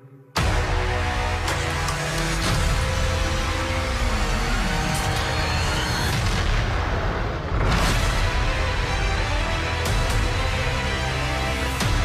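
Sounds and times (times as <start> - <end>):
dramatic trailer music: 0.0 - 12.0.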